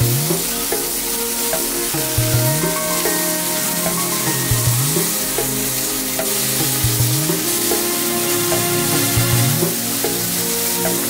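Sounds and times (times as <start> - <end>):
background music: 0.0 - 11.0
meat sizzling on grill: 0.0 - 11.0.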